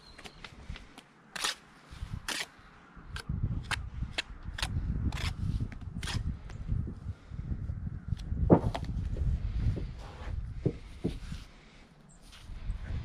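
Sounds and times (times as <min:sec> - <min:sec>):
trowel scraping and clicking on brick: 0:01.3 - 0:02.5, 0:03.2 - 0:05.4.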